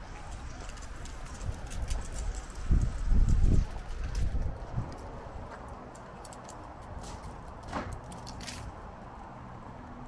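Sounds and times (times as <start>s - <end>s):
footsteps on pavement: 0.0s - 8.8s
faint outdoor background: 0.0s - 10.0s.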